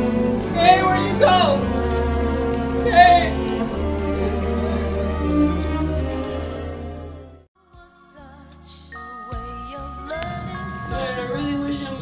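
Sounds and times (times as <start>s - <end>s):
low drone: 0.0s - 7.3s
music with long held notes: 0.0s - 12.0s.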